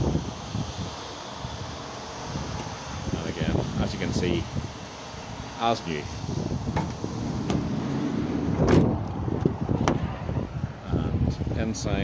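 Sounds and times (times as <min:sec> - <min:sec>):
van door clunk: 0:06.6 - 0:10.1.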